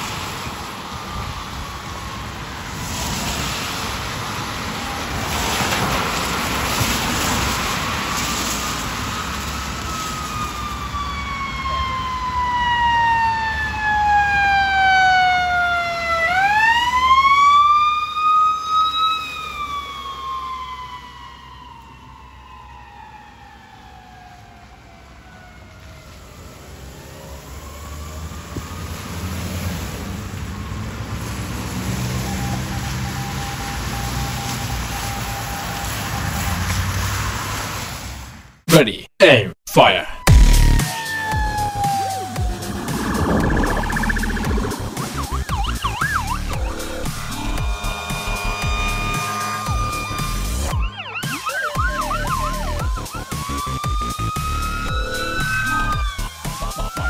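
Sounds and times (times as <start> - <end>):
tyres hissing on wet road: 0.0 - 10.7, 26.1 - 38.6, 44.6 - 50.7
ambulance siren wailing: 0.0 - 29.6, 30.4 - 36.7, 40.1 - 57.0.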